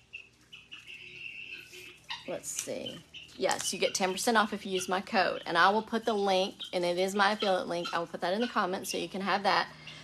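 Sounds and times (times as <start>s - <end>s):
pet birds chirping: 0.0s - 10.0s.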